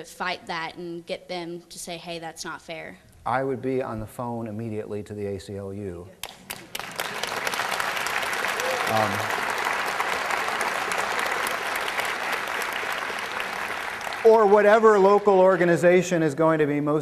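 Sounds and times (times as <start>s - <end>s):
audience applauding: 6.2s - 16.9s.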